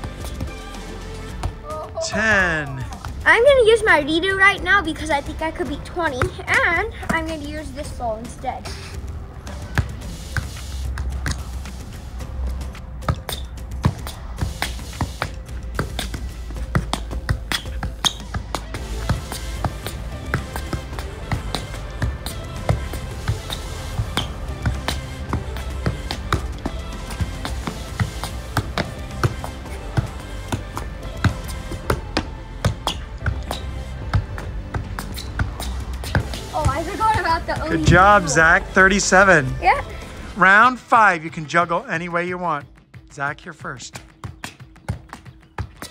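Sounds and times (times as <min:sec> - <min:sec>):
music with steady beat: 0:00.0 - 0:40.4.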